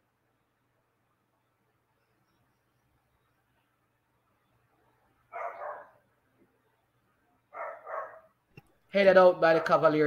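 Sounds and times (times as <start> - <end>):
faint steady hum: 0.0 - 10.0
dog barking: 5.3 - 6.0, 7.5 - 8.4.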